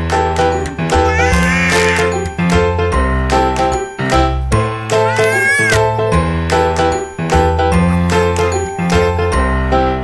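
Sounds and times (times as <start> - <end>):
light jingly music: 0.0 - 10.0.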